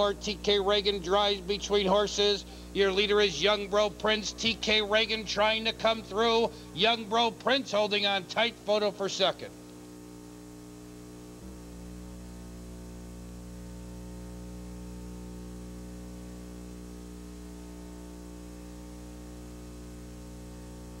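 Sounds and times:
electrical hum: 0:00.0 - 0:21.0.

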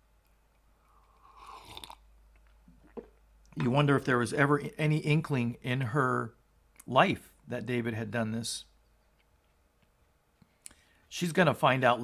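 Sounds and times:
man sipping from a mug: 0:00.8 - 0:02.0.

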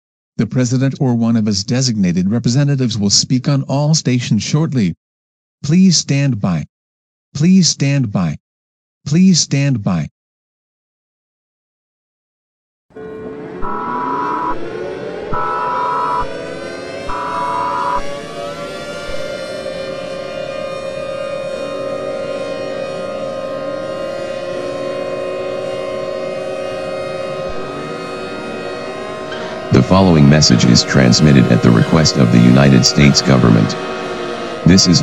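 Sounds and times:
sirens winding up and wailing: 0:12.9 - 0:35.0
digital data tones: 0:13.0 - 0:18.2.

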